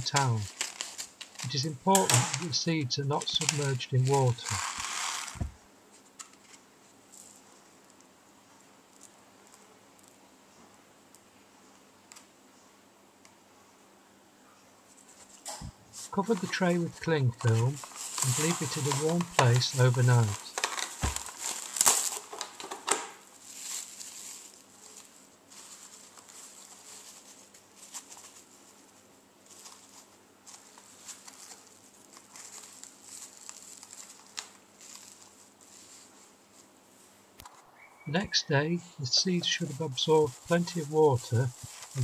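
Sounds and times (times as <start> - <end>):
seeds ticking: 0.0 - 5.5, 16.0 - 28.5, 37.4 - 42.0
cling film crinkling: 0.0 - 7.4, 15.2 - 36.8, 38.2 - 42.0
rustle of handling: 0.0 - 8.2, 14.8 - 42.0.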